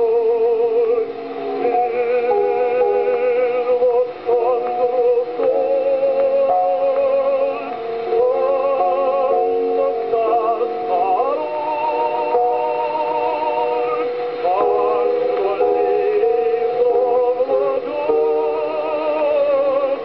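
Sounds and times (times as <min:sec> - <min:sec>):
ballad on gramophone record: 0:00.0 - 0:20.0.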